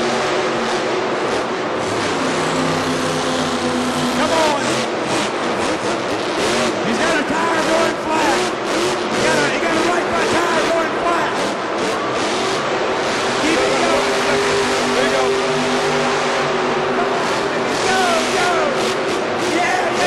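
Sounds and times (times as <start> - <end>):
voices: 6.7 - 20.0.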